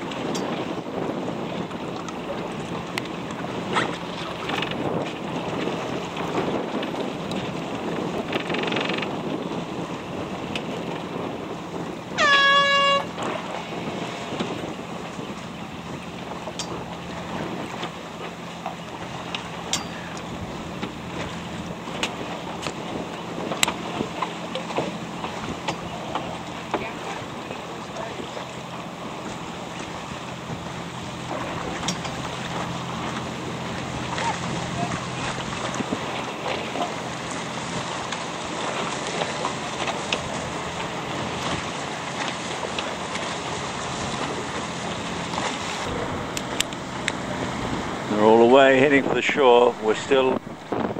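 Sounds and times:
water slapping against hull: 0.0s - 50.9s
wind buffeting microphone: 0.0s - 50.9s.

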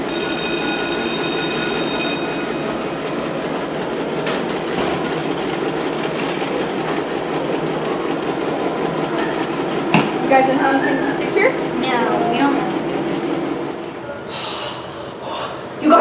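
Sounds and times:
electric school bell ringing: 0.0s - 3.3s.

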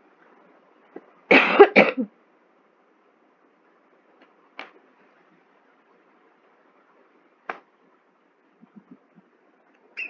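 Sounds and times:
person coughing: 1.3s - 2.1s.

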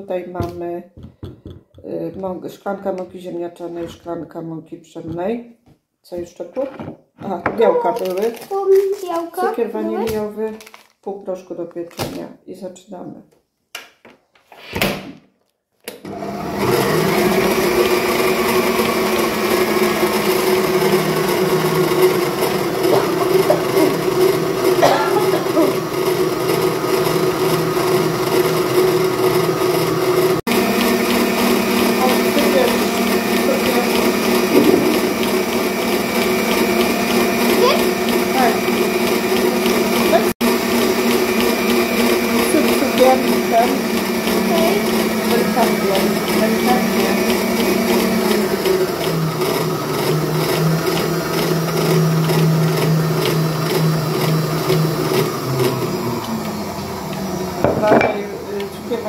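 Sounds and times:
stand mixer motor hum: 16.0s - 59.0s.

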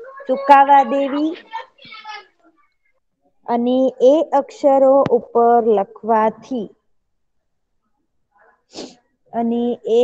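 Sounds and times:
person breath burst: 8.7s - 9.0s.

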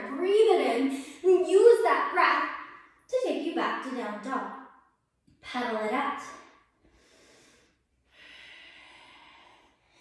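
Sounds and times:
woman breathing: 6.7s - 10.0s.

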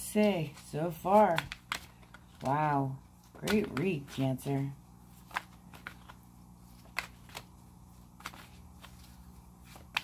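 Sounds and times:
cards being shuffled: 0.0s - 10.0s
faint low steady hum: 0.0s - 10.0s.

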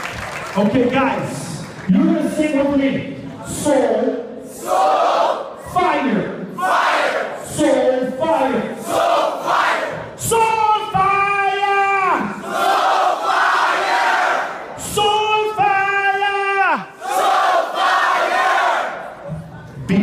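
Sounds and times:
crowd shouting: 11.7s - 19.2s.

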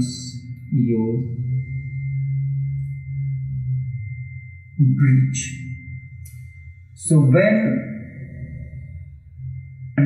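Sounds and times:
steady low drone tone: 0.0s - 10.0s.

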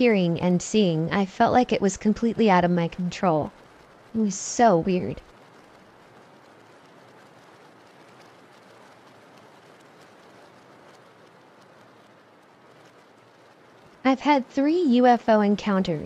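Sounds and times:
rain hiss and patter: 0.0s - 16.0s.

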